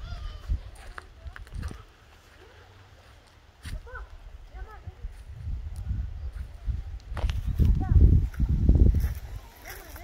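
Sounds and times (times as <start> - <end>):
wind buffeting microphone: 0.0 - 1.9, 3.6 - 10.0.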